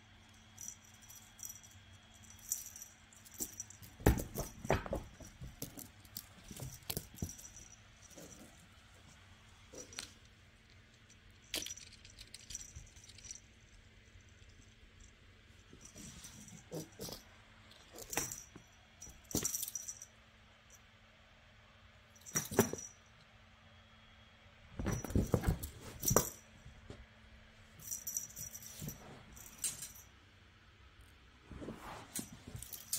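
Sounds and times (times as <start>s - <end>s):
metallic toy jingling: 0.4s - 8.6s, 27.8s - 30.1s.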